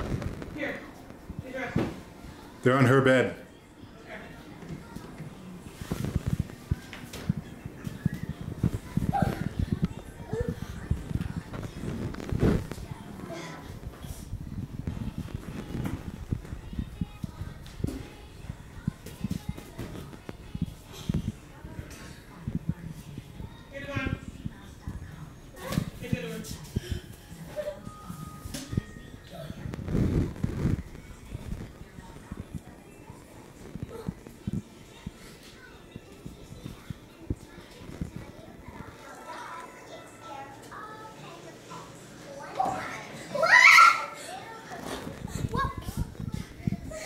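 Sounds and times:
faint voices: 3.4 - 47.0.

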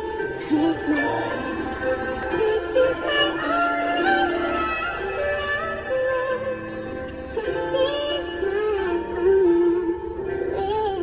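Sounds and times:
backing track: 0.0 - 11.0
person singing a slow ballad: 0.0 - 11.0.

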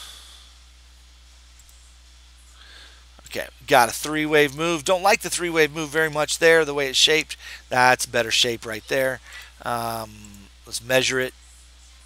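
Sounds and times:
soft breath: 0.0 - 0.7, 2.5 - 3.2, 7.4 - 7.7, 9.2 - 9.6
faint hiss: 0.0 - 12.0.

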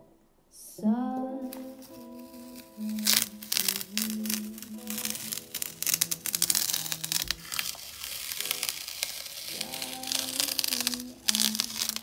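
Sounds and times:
soft background music: 0.0 - 12.0
masking tape peeled off paper: 1.4 - 12.0.

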